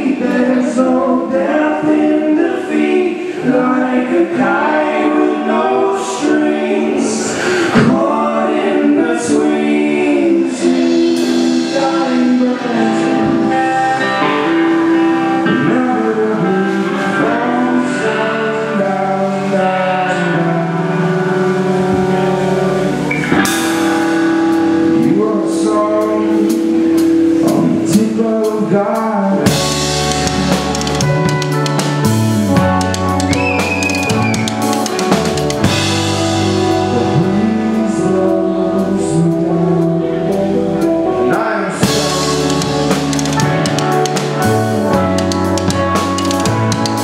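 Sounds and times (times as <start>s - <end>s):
electric guitars: 0.0s - 47.0s
voices singing in harmony: 0.0s - 47.0s
rock band playing: 7.4s - 47.0s.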